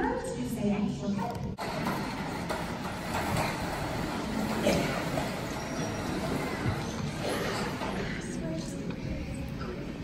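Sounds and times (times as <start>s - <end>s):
auditorium crowd noise: 0.0s - 10.0s
faint audience voices: 0.0s - 10.0s.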